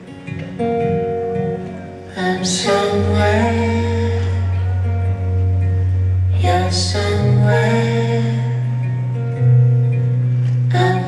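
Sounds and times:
acoustic and electric guitars picking: 0.0s - 11.0s
person singing: 2.1s - 9.8s.

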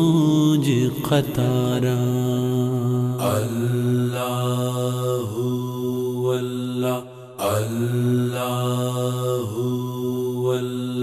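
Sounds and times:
devotional singing with held notes: 0.0s - 11.0s.

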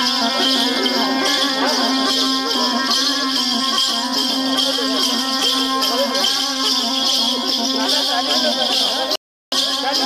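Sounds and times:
wavering melody: 0.0s - 10.0s.

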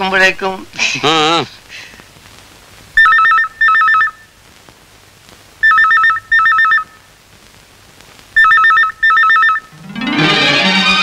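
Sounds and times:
electronic telephone ringing: 3.0s - 4.2s, 5.6s - 6.9s, 8.4s - 11.0s.

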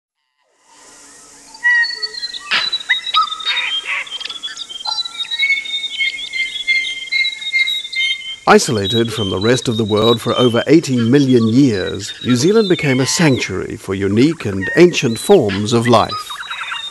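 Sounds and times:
steady high hiss: 0.5s - 16.9s
birds whistling and chirping: 1.0s - 16.9s.

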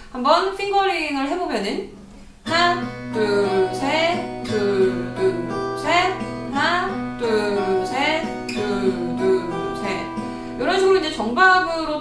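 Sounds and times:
fingerpicked acoustic guitar: 1.9s - 11.7s.

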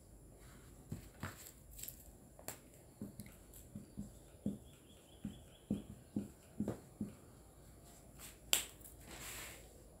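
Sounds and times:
soft rustle: 7.8s - 9.9s.

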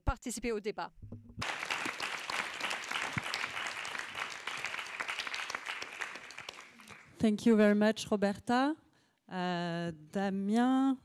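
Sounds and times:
audience applauding: 1.4s - 7.2s.

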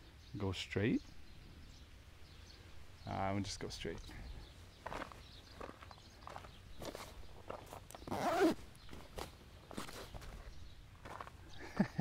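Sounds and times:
footsteps on dirt road: 4.0s - 11.6s.

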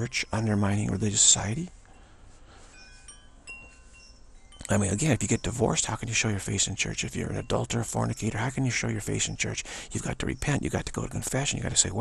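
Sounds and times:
high ringing chime tones: 0.0s - 10.7s.

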